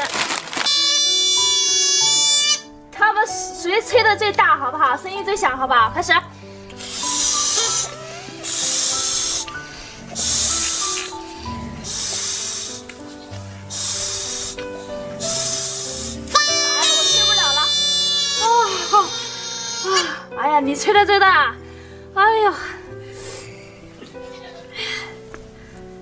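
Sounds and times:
background music: 0.0 - 26.0
balloon whistle squealing: 0.5 - 2.8, 6.8 - 9.6, 10.2 - 11.2, 11.8 - 12.8, 13.7 - 14.6, 15.2 - 20.3
breath blown into balloon whistles: 0.6 - 2.8, 6.4 - 20.3.

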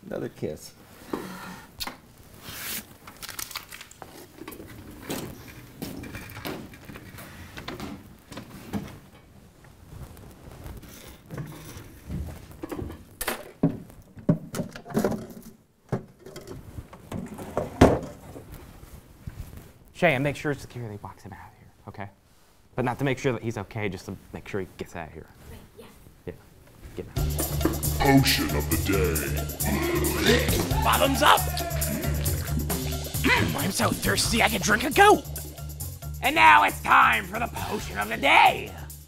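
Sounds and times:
rustling: 2.1 - 13.2, 16.5 - 20.0.

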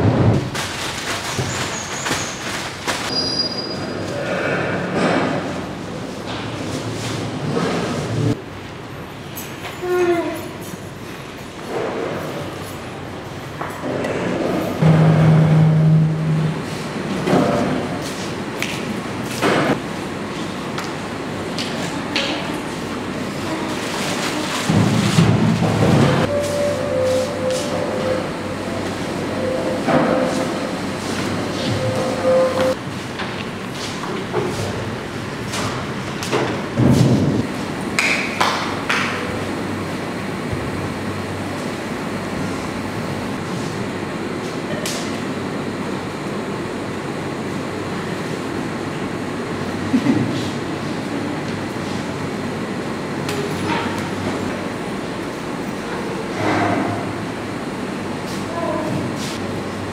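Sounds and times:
large room noise: 0.0 - 59.9
steady low-pitched hum: 14.8 - 20.2.

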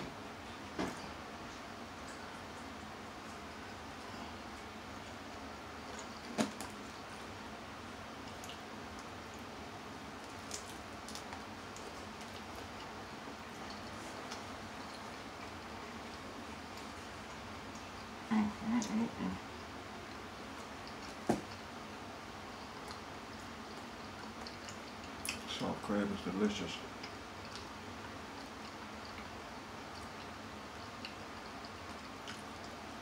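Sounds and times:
steady background hiss: 0.0 - 33.0
person chewing food: 22.5 - 25.5, 26.9 - 32.8.

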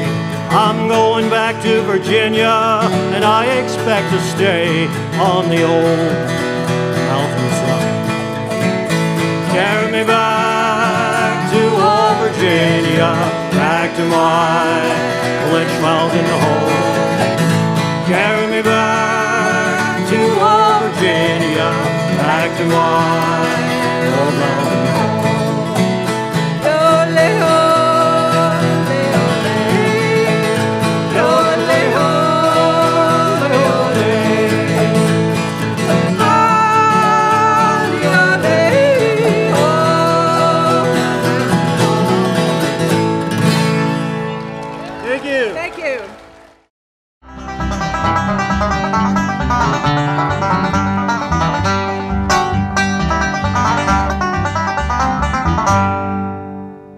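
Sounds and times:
autoharp and acoustic guitar: 0.0 - 46.5, 47.3 - 56.9
acoustic music: 0.0 - 56.9.

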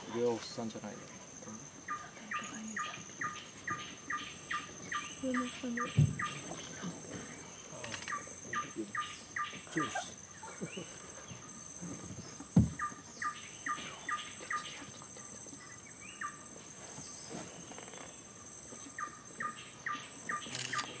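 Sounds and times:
low thump: 5.9 - 6.3, 12.6 - 12.8.

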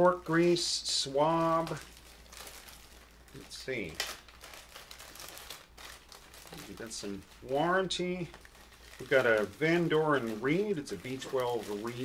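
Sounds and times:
paper and packaging crinkling: 0.0 - 12.0.

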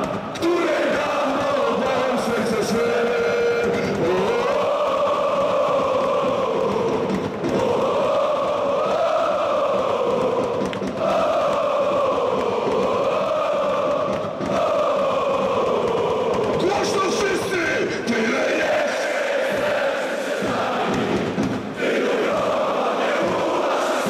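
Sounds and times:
crowd chanting in unison: 0.0 - 24.0.

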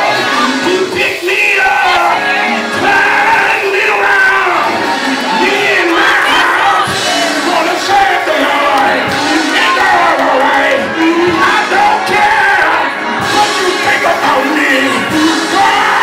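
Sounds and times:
congregation singing: 0.0 - 16.0
gospel band playing: 0.0 - 16.0
person singing into a microphone: 0.0 - 16.0.

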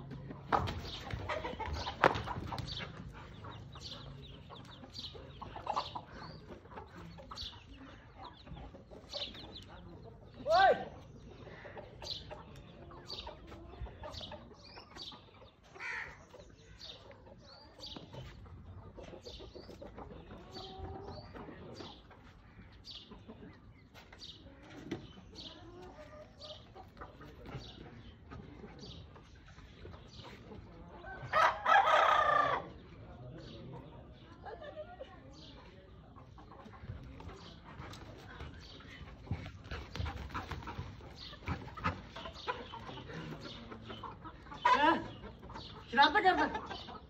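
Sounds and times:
chickens clucking: 0.0 - 47.0.

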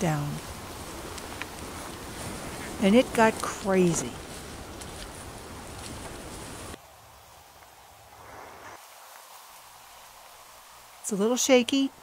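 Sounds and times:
faint outdoor background hiss: 0.0 - 12.0.

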